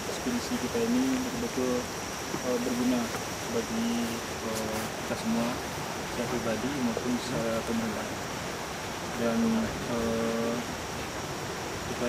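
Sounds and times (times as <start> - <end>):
man's voice praying: 0.0 - 5.6, 6.2 - 8.1, 9.2 - 10.6
steady rushing background noise: 0.0 - 12.0.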